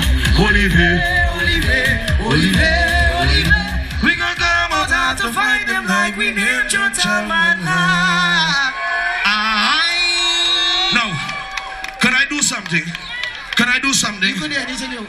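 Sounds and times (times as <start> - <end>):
live soca music with singing: 0.0 - 15.0.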